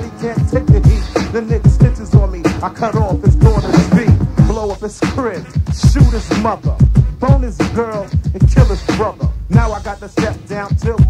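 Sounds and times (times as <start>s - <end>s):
rapping over a bass-heavy beat: 0.0s - 11.0s.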